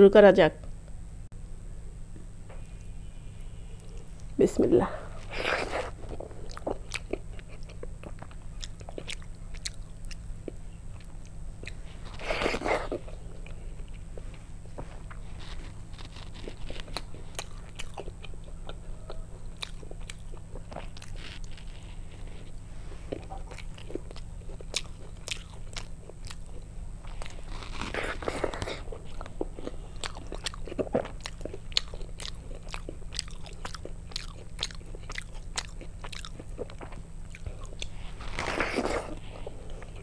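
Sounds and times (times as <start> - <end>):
low steady hum: 0.0 - 40.0
chewing crunchy food: 5.2 - 40.0.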